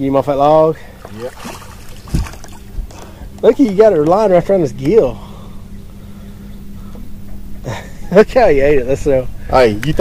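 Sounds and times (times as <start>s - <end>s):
fish splashing at water surface: 1.0s - 2.7s
dull low thump: 1.4s - 5.0s.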